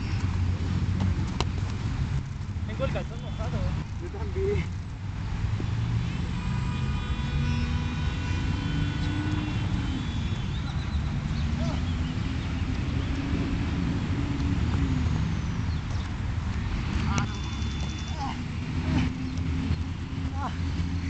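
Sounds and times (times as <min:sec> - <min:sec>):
distant engine rumble: 0:00.0 - 0:21.0.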